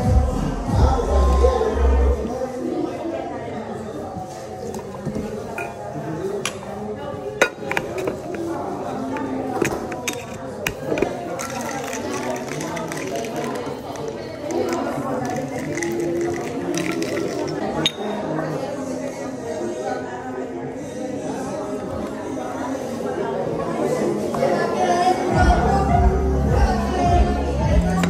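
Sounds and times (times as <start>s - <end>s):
people talking: 0.0s - 28.0s.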